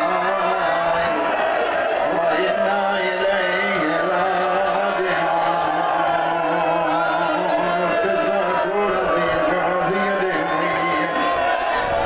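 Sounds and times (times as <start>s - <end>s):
man chanting a lament: 0.0s - 1.4s, 2.0s - 11.5s.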